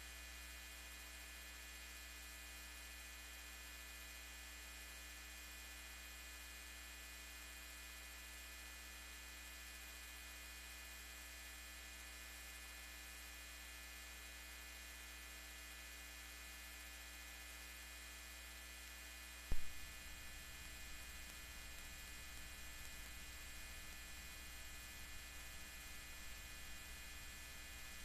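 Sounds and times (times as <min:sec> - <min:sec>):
faint mains hum with hiss: 0:00.0 - 0:28.0.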